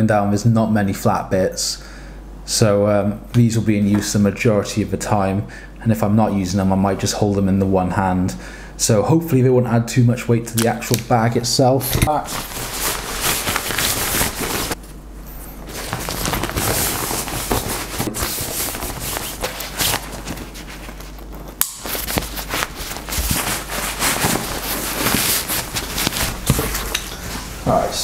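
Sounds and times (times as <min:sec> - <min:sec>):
nylon bag crinkling and rustling: 0:12.1 - 0:14.8, 0:15.7 - 0:27.6.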